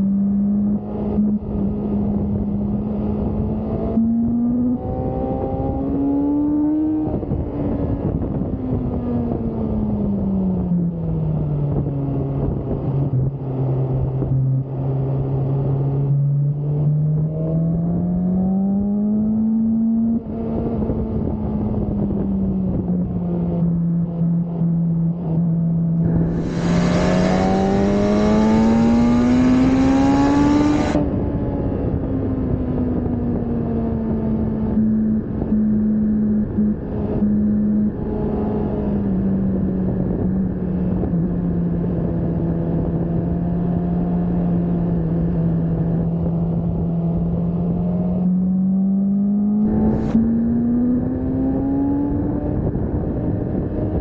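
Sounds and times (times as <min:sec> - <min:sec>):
motorcycle engine revving: 0:26.0 - 0:31.6, 0:47.2 - 0:53.8.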